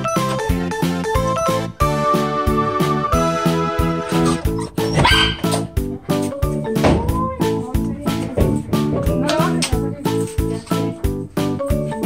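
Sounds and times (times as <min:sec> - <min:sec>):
music with a steady beat: 0:00.0 - 0:12.0
dog barking: 0:04.1 - 0:05.7.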